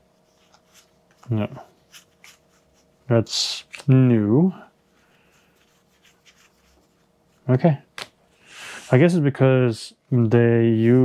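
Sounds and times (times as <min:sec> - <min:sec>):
person speaking: 0:01.2 - 0:02.0, 0:03.0 - 0:04.8.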